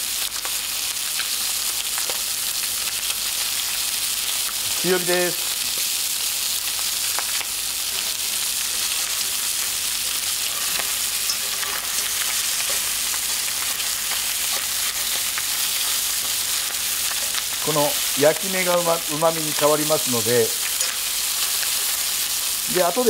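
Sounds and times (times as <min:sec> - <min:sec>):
chicken sizzling in hot oil: 0:00.0 - 0:23.0.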